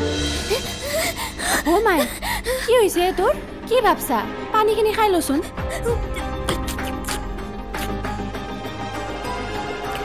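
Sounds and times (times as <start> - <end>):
woman gasping and moaning: 0.2 - 3.6, 5.4 - 7.9.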